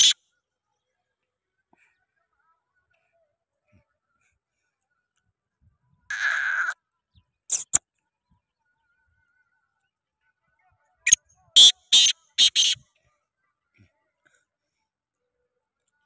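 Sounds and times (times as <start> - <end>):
bird harsh raspy calls: 6.1 - 6.8, 11.6 - 12.8.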